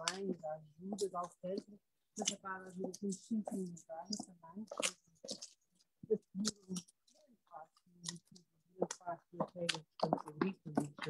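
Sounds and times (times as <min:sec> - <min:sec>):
woman speaking softly: 0:00.0 - 0:05.4, 0:06.0 - 0:11.0.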